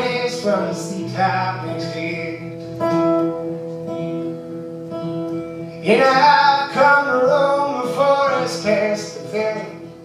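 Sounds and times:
acoustic guitar strumming: 0.0 - 10.0
person singing: 5.8 - 9.9.

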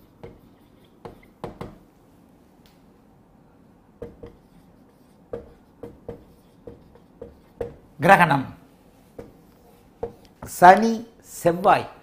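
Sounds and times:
marker pen writing on whiteboard: 0.0 - 1.8, 4.0 - 8.2, 8.9 - 10.9.

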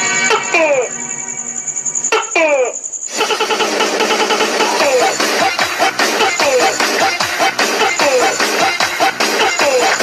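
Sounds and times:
electronic dance music: 0.0 - 1.0, 2.1 - 10.0.

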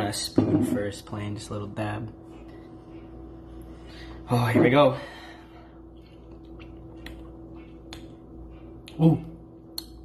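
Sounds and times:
steady low hum: 0.0 - 10.0
mouth clicks and lip smacks: 6.3 - 8.2, 9.6 - 10.0.

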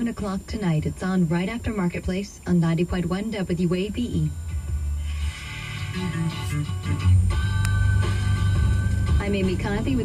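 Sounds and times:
plucked guitar music on radio: 0.0 - 10.0.

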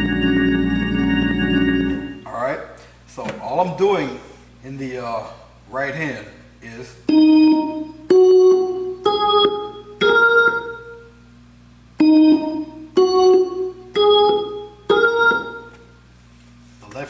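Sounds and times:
organ chords: 0.0 - 2.6, 7.0 - 11.3, 12.0 - 16.0.

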